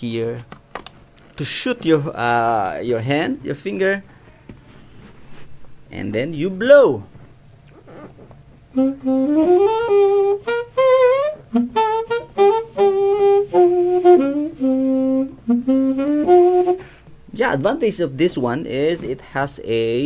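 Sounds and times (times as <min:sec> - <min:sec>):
muted saxophone melody: 0:07.8 - 0:17.0.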